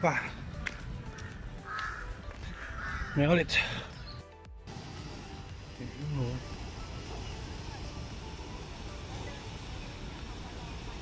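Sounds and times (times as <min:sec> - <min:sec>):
crow cawing: 0:01.1 - 0:03.9.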